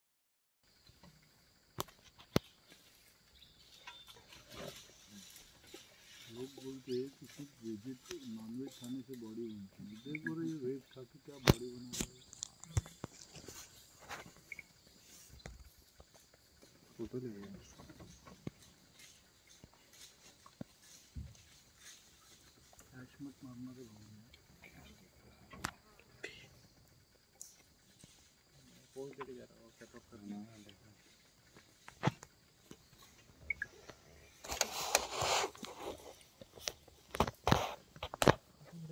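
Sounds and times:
sharp click: 11.4s - 13.0s
faint whispering: 26.1s - 26.7s
brief hiss: 34.4s - 36.0s.

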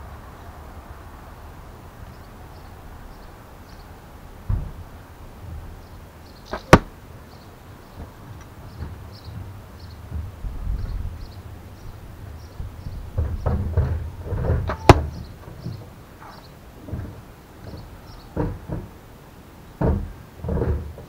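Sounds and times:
arrow striking target: 6.5s - 7.0s, 14.7s - 15.1s.

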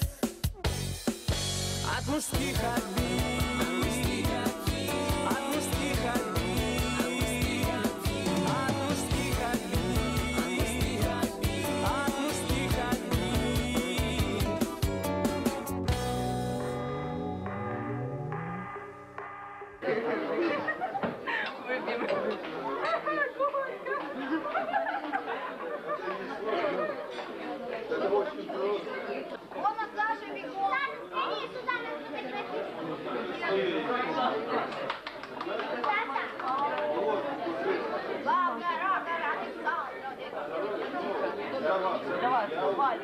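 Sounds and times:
many people talking: 1.8s - 15.7s, 19.8s - 43.0s.

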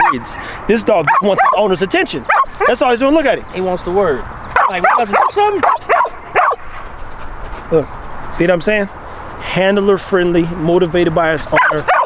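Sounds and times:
dog yipping and whining: 2.3s - 2.8s, 4.6s - 6.6s, 11.6s - 12.0s.

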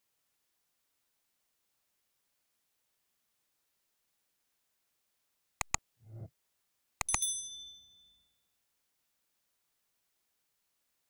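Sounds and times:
mouse double click: 7.0s - 7.2s
bright bell ding: 7.0s - 8.2s.

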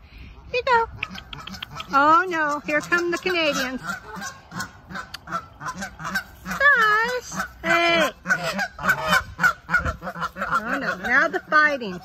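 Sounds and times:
geese honking: 1.3s - 12.0s.

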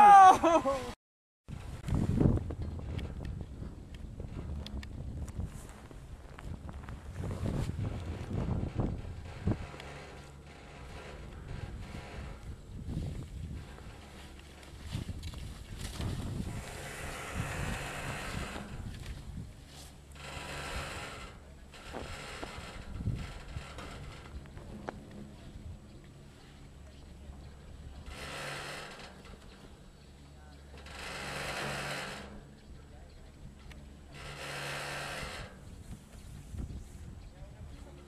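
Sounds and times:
wind buffeting microphone: 1.5s - 30.0s, 32.1s - 38.0s.

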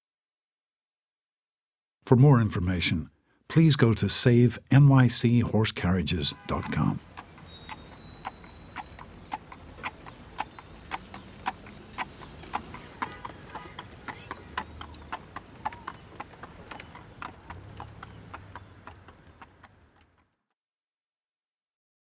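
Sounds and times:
faint street noise: 2.2s - 20.4s
horse hooves clip-clopping on pavement: 6.4s - 20.6s.

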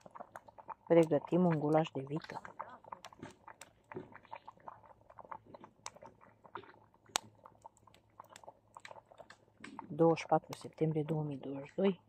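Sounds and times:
wood fire crackling and popping: 0.0s - 12.0s.

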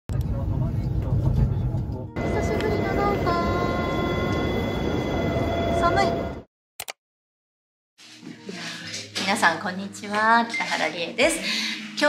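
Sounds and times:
train rumbling: 0.1s - 6.4s
station platform hum: 0.1s - 6.5s
high steady tones: 2.2s - 6.5s.

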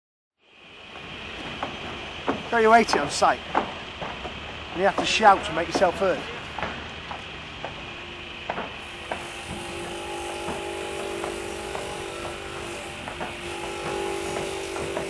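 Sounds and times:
saw blade whine: 7.7s - 15.0s
table saw cutting stone: 8.8s - 15.0s.

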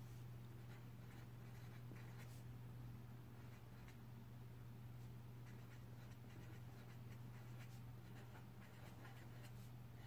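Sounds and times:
pen scratching on paper: 0.6s - 2.4s, 5.4s - 9.7s.

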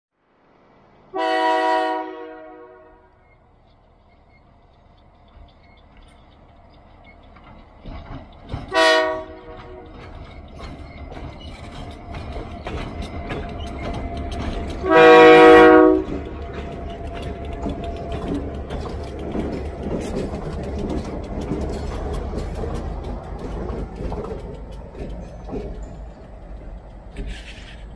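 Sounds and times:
train wheels on rails: 0.3s - 27.9s
locomotive horn blasts: 1.1s - 3.2s, 8.7s - 10.0s, 14.8s - 16.3s
diesel engines rumbling: 3.2s - 27.9s.

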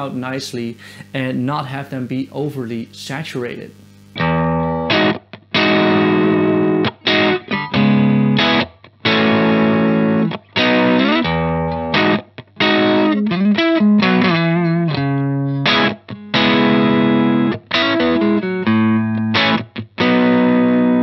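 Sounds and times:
overdriven electric guitar: 3.6s - 21.0s.

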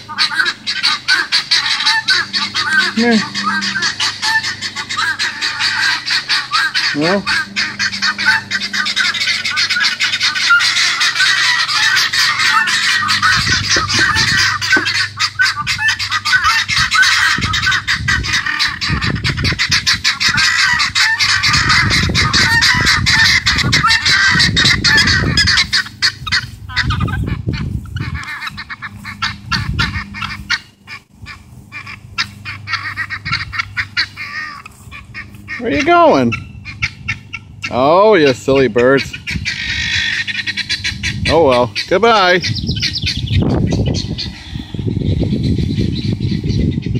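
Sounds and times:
guineafowl chattering calls: 0.0s - 46.9s.

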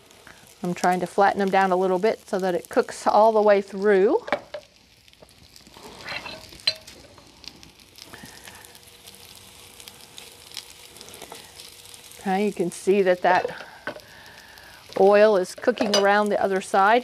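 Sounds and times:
fritters sizzling in oil: 0.0s - 17.0s.

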